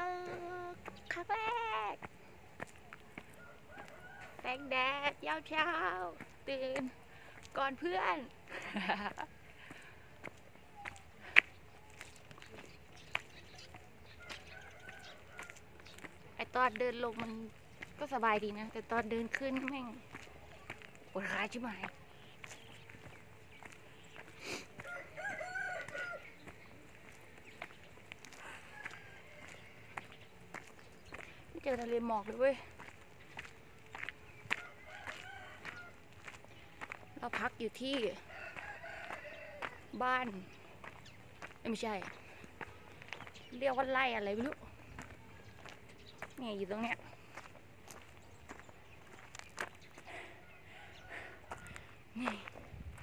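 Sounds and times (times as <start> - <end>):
footsteps on paved path: 0.0 - 53.0
rooster crowing: 3.4 - 4.5, 14.2 - 15.6, 24.8 - 26.4, 28.7 - 29.9, 34.5 - 36.0, 38.3 - 39.8.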